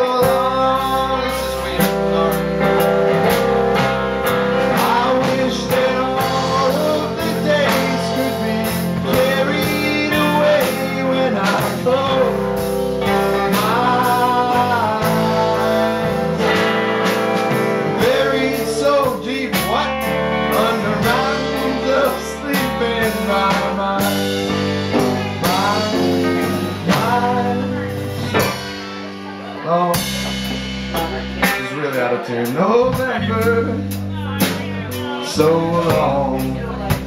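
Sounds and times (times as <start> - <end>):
blues-rock band playing: 0.0 - 37.0
electric guitar lead line bending: 0.0 - 37.0.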